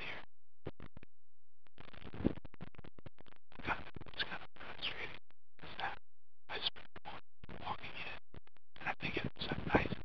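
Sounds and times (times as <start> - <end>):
man talking: 3.6 - 6.7, 7.6 - 8.2, 8.8 - 10.0.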